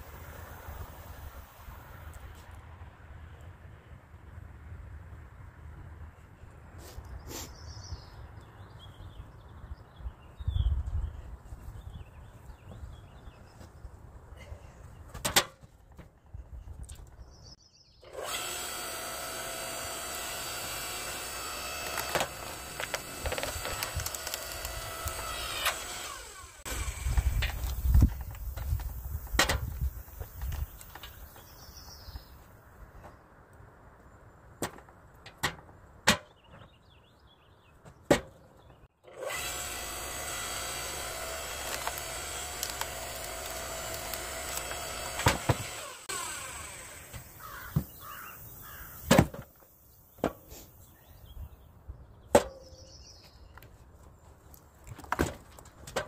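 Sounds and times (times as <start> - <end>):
log splitter motor humming: 18.1 - 27.8, 39.1 - 48.2
split wood clattering: 20.4 - 29.7, 40.5 - 46.5, 54.8 - 56.0.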